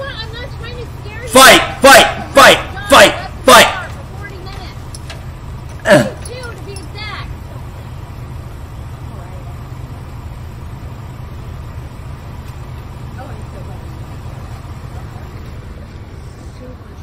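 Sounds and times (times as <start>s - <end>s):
low outdoor rumble: 0.0s - 17.0s
faint voices: 12.9s - 17.0s.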